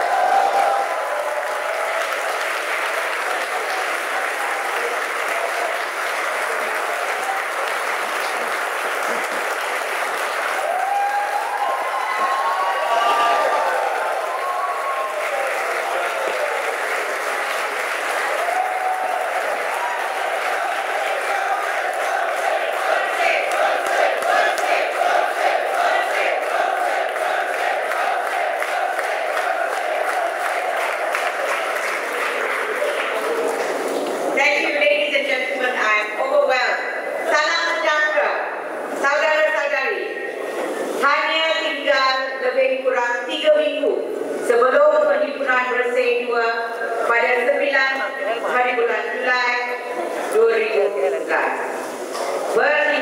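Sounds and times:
crowd shouts and cheers: 0.0s - 5.9s, 10.4s - 17.2s, 18.1s - 34.2s
audience applauding: 0.0s - 34.8s
rhythmic clapping: 1.0s - 11.7s, 14.0s - 34.4s.

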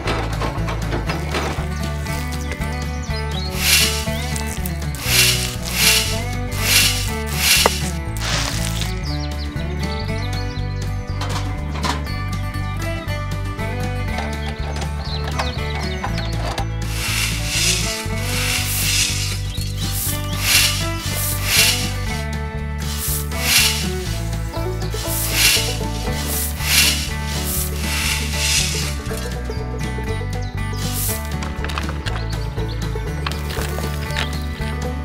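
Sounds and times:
background music with bass line: 0.0s - 35.0s
hand tool scraping sand: 3.4s - 9.0s, 16.8s - 22.2s, 22.8s - 29.2s, 30.8s - 31.4s.

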